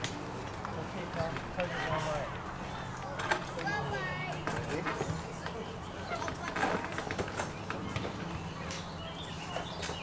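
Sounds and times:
background voices chattering: 0.2 - 10.0.

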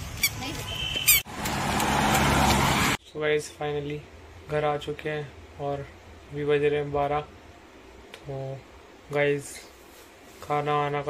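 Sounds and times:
motor vehicle engine hum: 0.0 - 3.0
road noise: 0.0 - 3.0.

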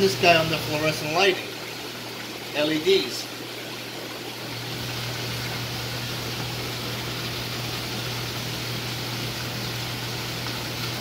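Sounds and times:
aquarium pump hum: 0.0 - 11.0
rushing water flow: 0.0 - 11.0.

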